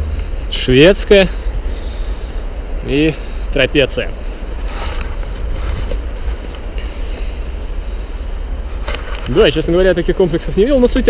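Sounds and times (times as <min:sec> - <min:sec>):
faint road traffic hiss: 0:00.0 - 0:11.0.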